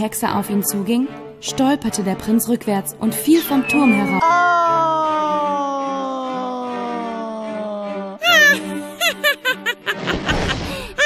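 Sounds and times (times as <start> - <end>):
soft background music: 0.0 - 11.0
shrill wavering cackle: 3.5 - 11.0
cartoon man's falling yell: 4.1 - 8.6.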